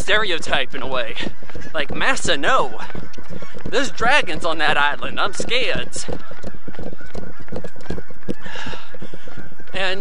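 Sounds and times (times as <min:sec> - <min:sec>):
geese honking faintly: 0:00.0 - 0:10.0.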